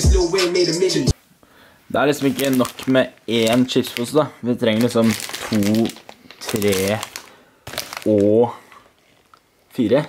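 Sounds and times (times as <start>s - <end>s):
man talking: 1.9s - 7.1s, 8.0s - 8.7s, 9.7s - 10.0s
crisp bags crinkling: 2.0s - 10.0s.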